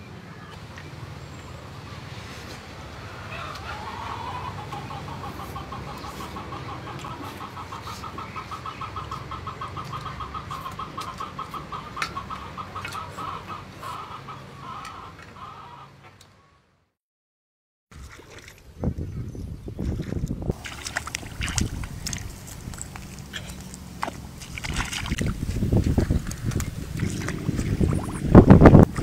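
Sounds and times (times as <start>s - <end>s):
fowl clucking: 3.3s - 16.0s.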